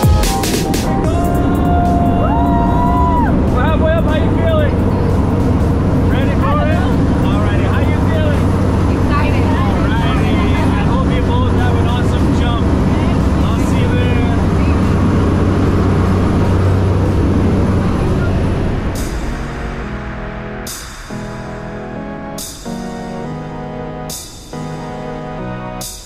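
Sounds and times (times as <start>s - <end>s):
propeller airplane engine droning: 0.0s - 25.9s
people talking: 3.5s - 5.2s, 6.0s - 15.2s.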